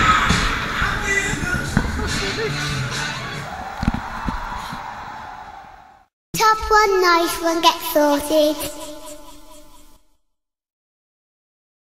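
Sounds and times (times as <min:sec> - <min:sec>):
fairground ride running: 0:00.0 - 0:03.5
low thumps: 0:00.0 - 0:04.8.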